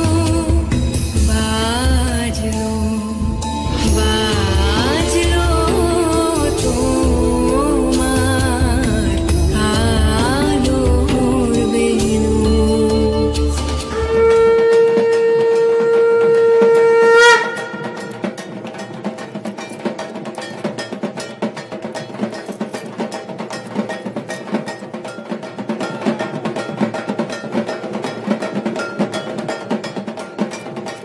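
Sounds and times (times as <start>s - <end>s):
drum strokes: 0.0s - 31.0s
metallic clanging beat: 0.0s - 31.0s
conch shell blown: 13.2s - 18.2s.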